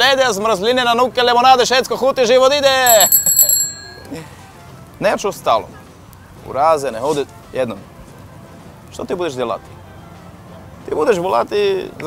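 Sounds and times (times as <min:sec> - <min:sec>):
small bell ringing: 0:02.9 - 0:04.4.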